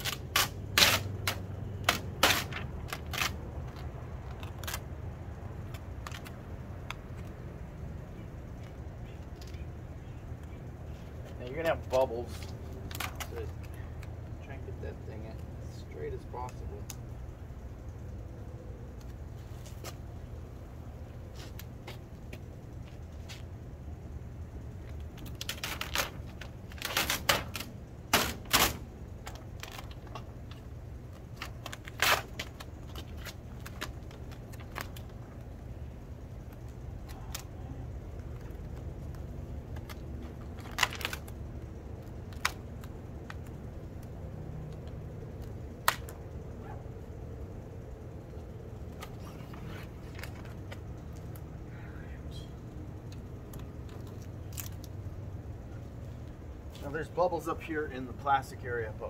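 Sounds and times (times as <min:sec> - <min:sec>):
plastic sheet crackling and snapping: 0:00.0 - 0:04.8, 0:12.9 - 0:13.5, 0:25.1 - 0:35.4, 0:38.2 - 0:44.1, 0:45.3 - 0:46.2.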